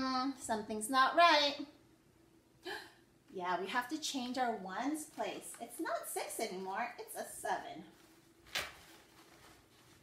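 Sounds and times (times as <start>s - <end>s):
faint room hum: 0.0s - 10.0s
vinyl pocket rustle: 7.9s - 10.0s.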